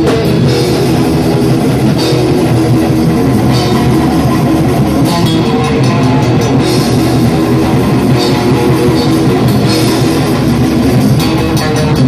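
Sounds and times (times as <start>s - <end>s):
live heavy rock band: 0.0s - 12.0s.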